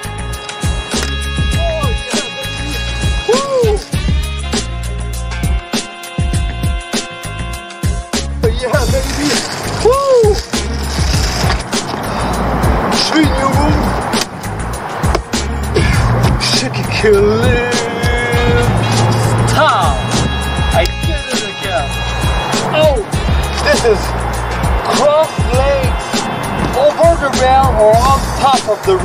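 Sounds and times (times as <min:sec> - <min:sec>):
background music: 0:00.0 - 0:29.0
skate wheels rolling on concrete: 0:08.8 - 0:15.4.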